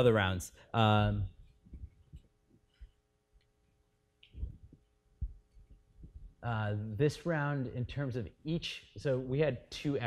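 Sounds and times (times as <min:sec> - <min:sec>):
faint electrical hum: 0:00.0 - 0:10.0
soft low thumps: 0:04.4 - 0:06.4.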